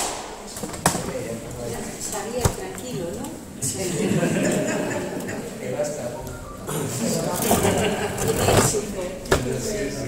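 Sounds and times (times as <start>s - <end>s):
people laughing: 3.6s - 5.9s, 6.6s - 8.7s.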